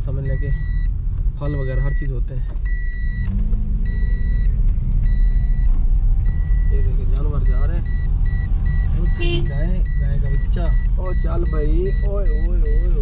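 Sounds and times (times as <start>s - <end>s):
car engine and road rumble: 0.0s - 13.0s
car warning chime beeping: 0.0s - 13.0s.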